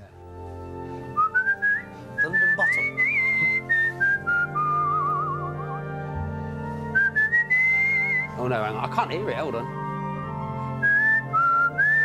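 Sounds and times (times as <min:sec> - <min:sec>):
man whistling a tune: 0:01.1 - 0:05.8, 0:06.9 - 0:08.4, 0:10.8 - 0:12.0.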